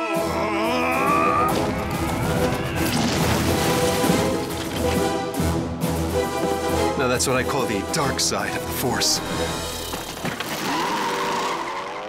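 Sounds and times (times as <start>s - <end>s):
tyres squealing: 0.6s - 4.9s.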